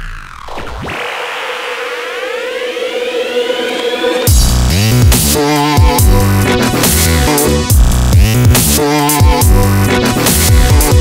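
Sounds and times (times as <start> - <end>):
held synth tone: 0.0 - 4.4
rising synth sweeps: 0.0 - 5.8.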